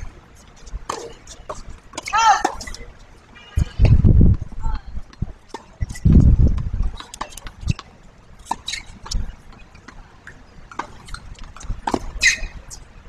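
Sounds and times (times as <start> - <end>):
tennis ball bouncing on court: 6.5 - 12.6.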